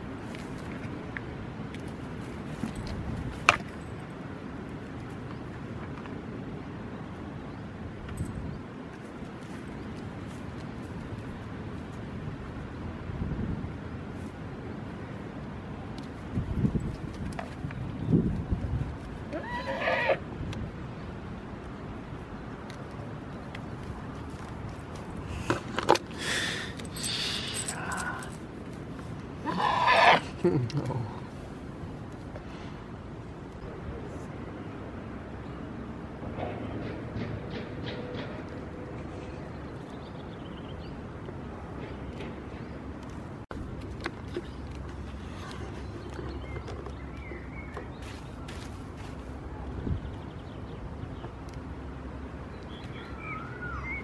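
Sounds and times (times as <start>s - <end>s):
scuffs: 47.8s - 49.5s.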